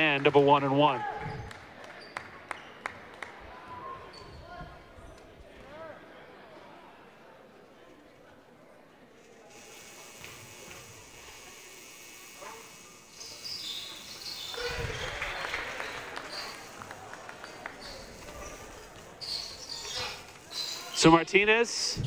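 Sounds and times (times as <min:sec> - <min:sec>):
crowd cheering: 0:00.0 - 0:04.6, 0:12.5 - 0:21.7
faint crowd voices: 0:00.0 - 0:22.0.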